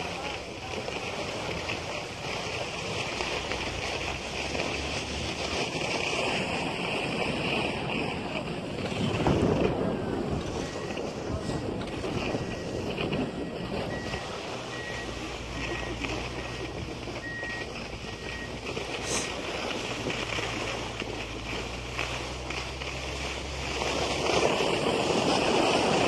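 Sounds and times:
wind on microphone: 6.3s - 14.5s.

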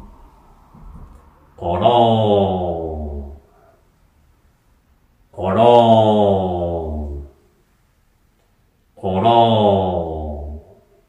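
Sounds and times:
man drawing out a sung word: 1.6s - 3.6s, 5.4s - 7.4s, 9.0s - 10.9s.

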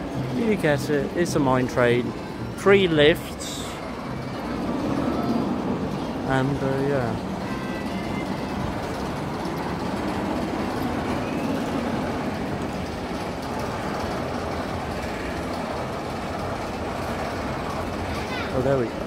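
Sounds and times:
roller coaster rolling on steel track: 0.0s - 19.0s.

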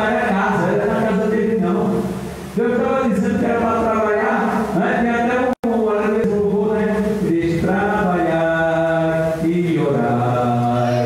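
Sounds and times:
man singing into a microphone: 4.1s - 11.0s.

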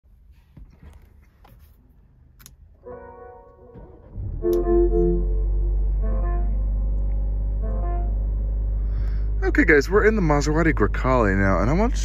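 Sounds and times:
car power-on chime: 4.4s - 5.8s.

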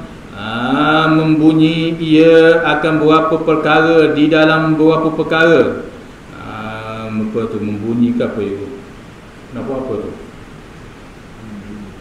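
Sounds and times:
faint hum of man's voice: 0.0s - 8.9s, 9.5s - 10.4s, 11.3s - 12.0s
microphone hiss and room noise: 0.0s - 12.0s
man speaking: 9.5s - 10.3s.

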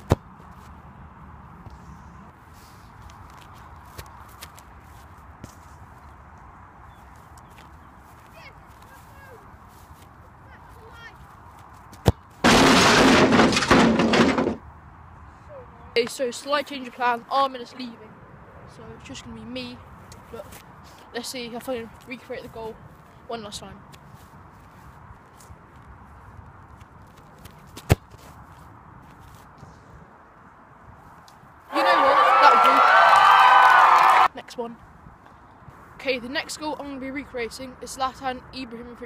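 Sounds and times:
person shouting in frustration: 31.7s - 33.2s.

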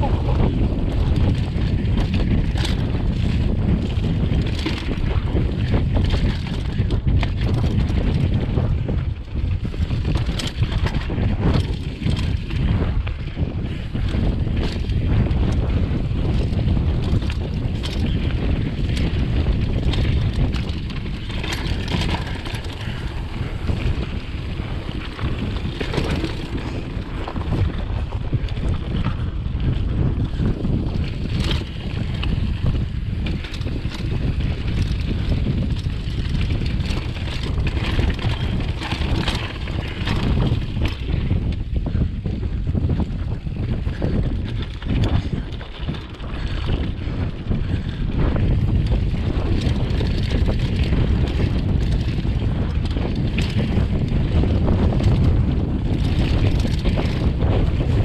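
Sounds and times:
tyres rumbling on dirt: 0.0s - 42.0s, 42.8s - 58.0s
bike knocks and rattles: 0.0s - 58.0s
wind buffeting microphone: 0.0s - 58.0s.

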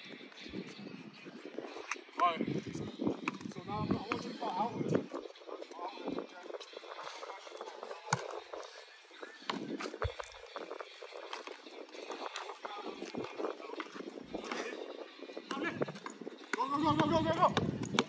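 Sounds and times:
background voices: 0.0s - 18.0s.

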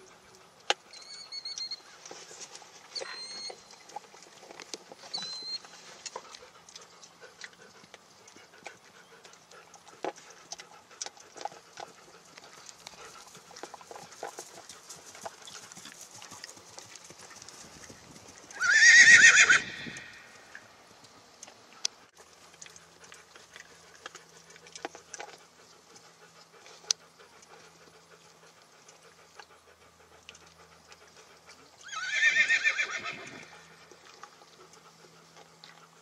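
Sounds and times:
hoofbeats on dry turf: 11.6s - 20.0s
horse whinnying: 18.5s - 20.4s, 31.8s - 33.6s.

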